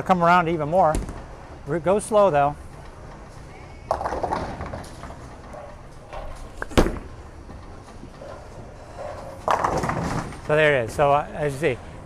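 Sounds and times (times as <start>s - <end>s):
bowling alley clatter: 0.0s - 11.9s
bowling ball thud: 0.9s - 1.4s, 3.9s - 7.6s, 9.0s - 10.4s
bowling ball rolling rumble: 0.9s - 11.0s
ball striking pins: 3.9s - 8.4s, 9.0s - 10.5s.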